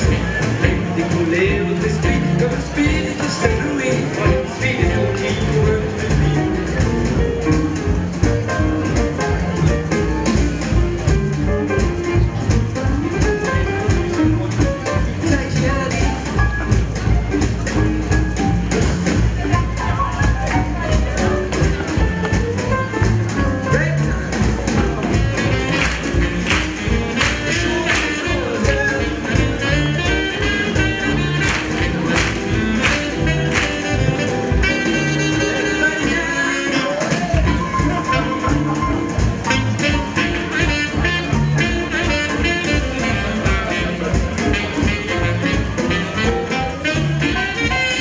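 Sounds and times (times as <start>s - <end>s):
double bass walking line: 0.0s - 48.0s
piano: 0.0s - 48.0s
swing jazz band playing: 0.0s - 48.0s.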